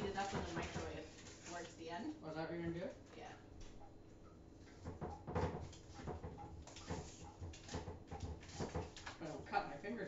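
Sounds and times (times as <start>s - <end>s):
kitchen utensils knocking and clicking: 4.8s - 9.0s.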